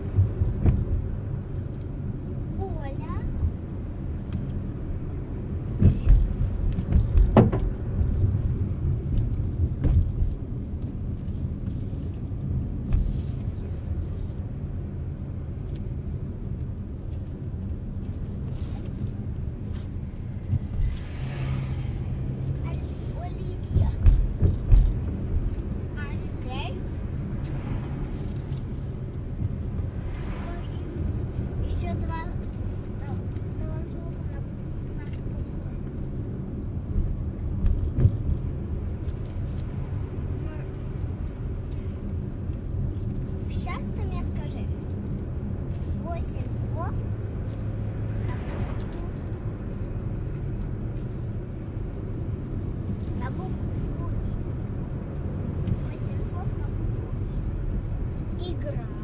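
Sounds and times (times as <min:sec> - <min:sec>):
car engine and tyre rumble: 0:00.0 - 0:59.0.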